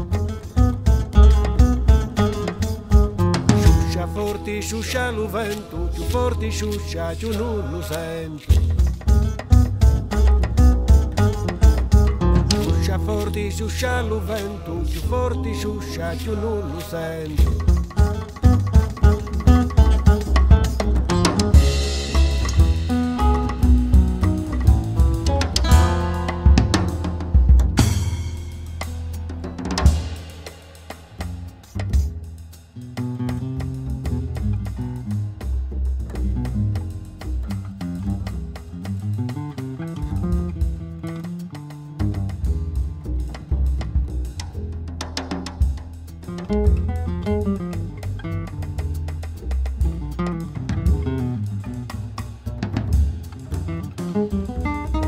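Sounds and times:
drum kit: 0.0 - 4.6, 8.4 - 13.7, 17.2 - 55.0
plucked strings: 0.0 - 30.3, 32.9 - 55.0
low bass: 0.0 - 55.0.

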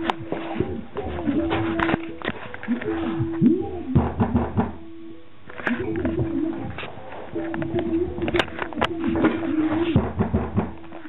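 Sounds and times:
sharp knocks: 4.0 - 4.8, 9.9 - 10.8.

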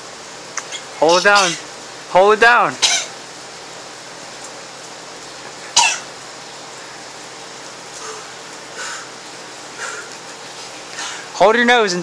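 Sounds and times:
man gagging: 1.0 - 1.7
man coughing: 1.1 - 1.6, 5.8 - 6.0.

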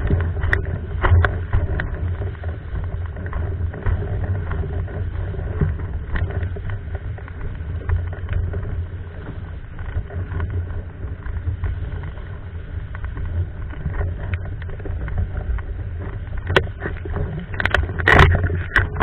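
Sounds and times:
board slapping water: 0.0 - 19.0
rush of wind and water: 0.0 - 19.0.

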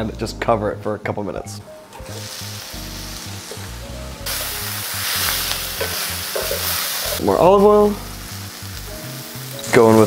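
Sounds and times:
food sizzling in a skillet: 2.1 - 10.0.

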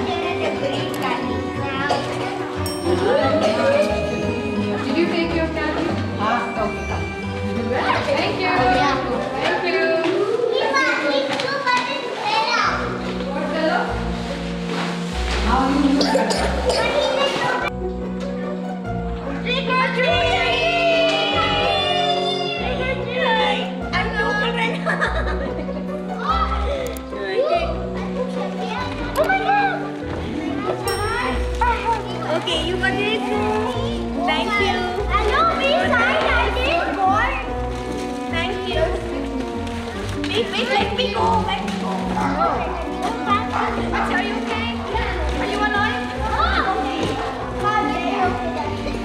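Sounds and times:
children talking and calling out: 0.0 - 13.6, 15.5 - 49.0.

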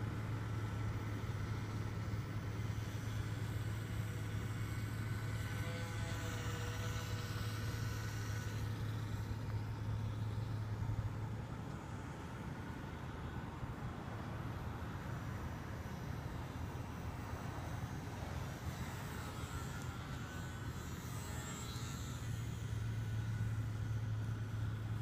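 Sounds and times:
model plane electric motor whine: 0.0 - 25.0
steady low hum: 0.0 - 25.0.

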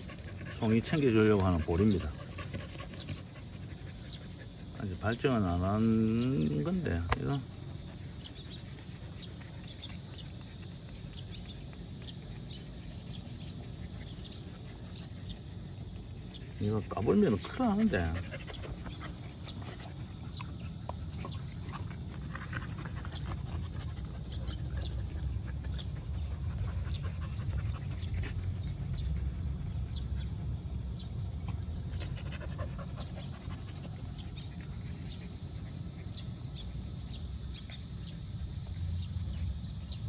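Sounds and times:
dogs panting: 0.0 - 40.0.

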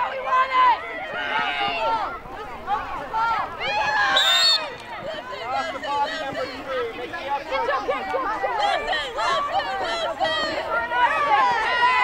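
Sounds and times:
overlapping voices chattering: 0.0 - 12.0.

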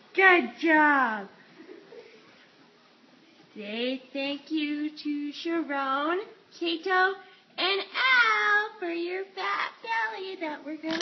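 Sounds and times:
woman speaking in sing-song tone: 0.1 - 1.4, 3.6 - 11.0.

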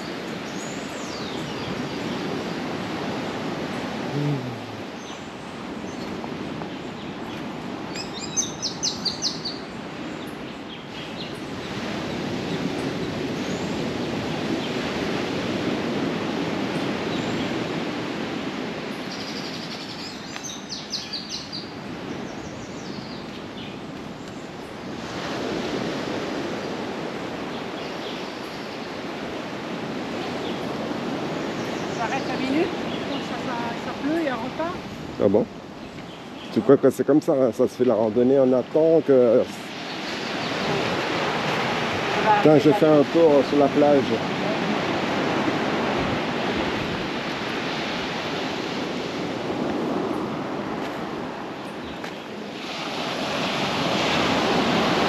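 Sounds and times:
surf washing on shore: 0.0 - 55.0.

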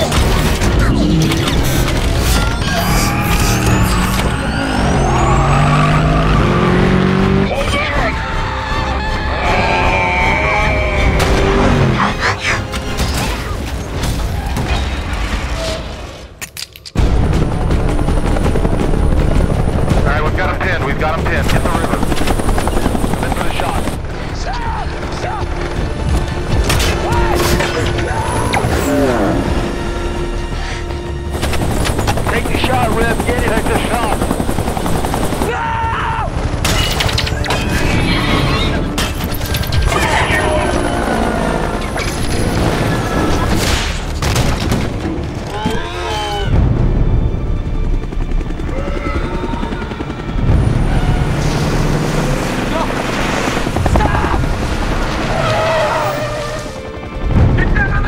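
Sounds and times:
helicopter rotors: 0.0 - 13.0, 17.0 - 44.2, 46.5 - 58.0
dramatic music: 0.0 - 16.4, 17.0 - 58.0
people shouting: 7.4 - 11.7, 26.9 - 29.2, 35.4 - 36.5.

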